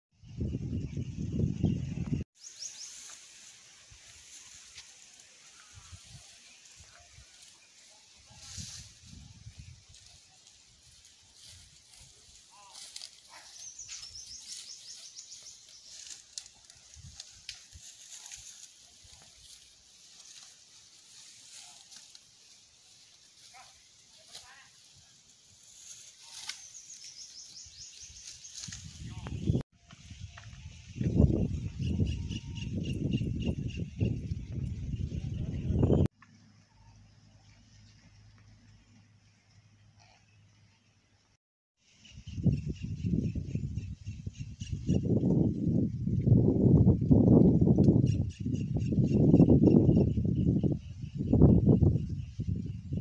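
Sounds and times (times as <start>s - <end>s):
cow cropping grass: 2.7s - 29.4s.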